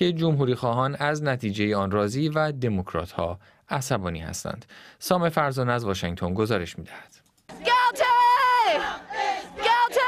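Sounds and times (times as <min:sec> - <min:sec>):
crowd: 0:07.5 - 0:10.0
woman shouting: 0:07.6 - 0:10.0.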